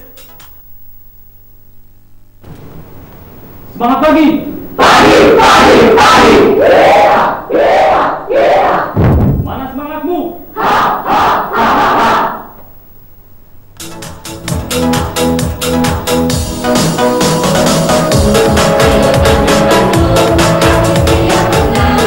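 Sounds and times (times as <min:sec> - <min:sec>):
group shouting team cheer: 0:04.8 - 0:09.0, 0:10.6 - 0:12.5.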